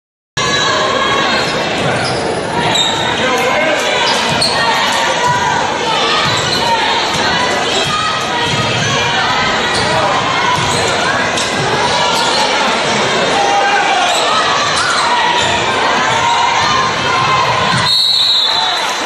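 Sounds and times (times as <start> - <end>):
crowd shouting and cheering: 0.4 - 19.0
referee whistle: 17.7 - 19.0.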